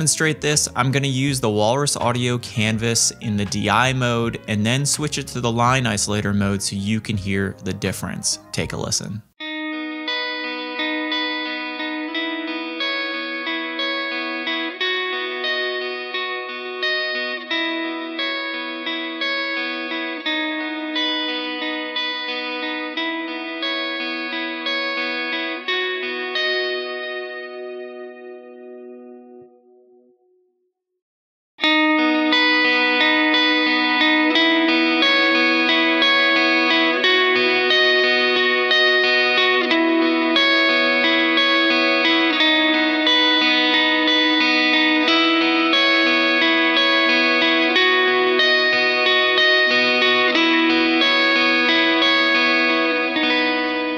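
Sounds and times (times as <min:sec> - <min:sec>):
electric guitar sustained notes: 0:00.0 - 0:30.1, 0:31.6 - 0:53.9.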